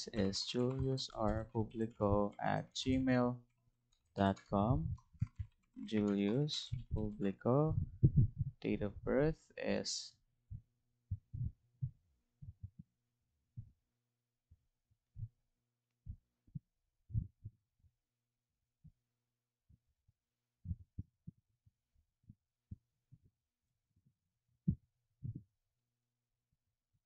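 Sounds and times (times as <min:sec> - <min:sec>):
computer mouse clicks: 0:00.1 - 0:03.2, 0:05.2 - 0:07.1.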